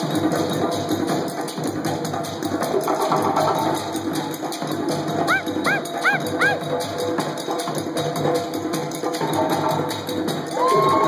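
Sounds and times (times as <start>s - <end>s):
hand drumming: 2.6s - 11.0s
high swooping calls: 5.2s - 6.6s.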